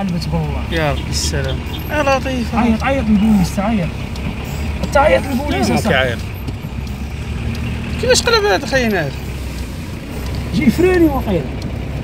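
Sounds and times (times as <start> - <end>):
person speaking: 0.0 - 6.3, 7.9 - 9.2
car engine idling: 0.0 - 12.0.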